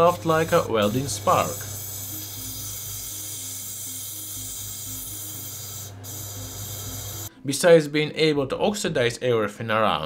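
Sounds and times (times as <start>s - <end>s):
tube burning with steady hiss: 0.0s - 7.3s.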